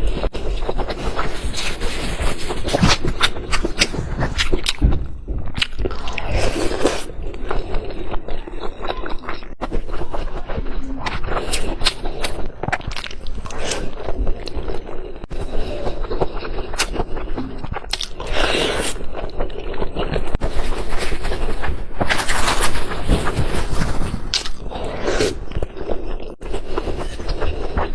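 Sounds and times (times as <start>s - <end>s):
wet chewing of meat: 0.0s - 20.7s.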